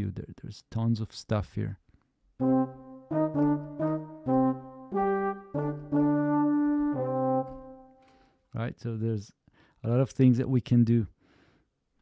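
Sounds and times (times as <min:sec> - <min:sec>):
brass ensemble playing held notes: 0:02.4 - 0:08.1.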